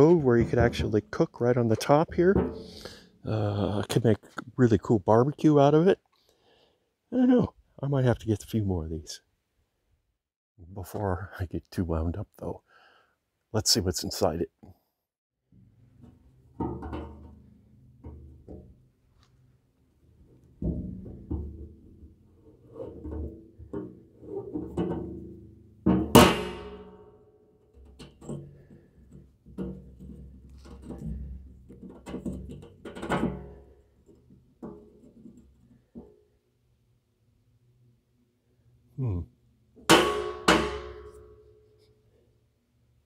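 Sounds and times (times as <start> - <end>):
tool knocking on steel drum: 2.1 - 3.0, 39.9 - 41.4
hollow ringing of steel drum: 2.1 - 3.2, 24.8 - 27.2, 39.9 - 41.7.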